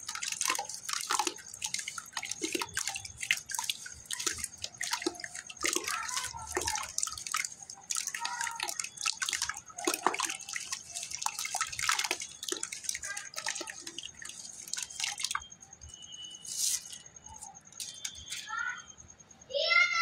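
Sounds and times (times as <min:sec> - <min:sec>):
hands splashing in bucket water: 0:00.0 - 0:15.5.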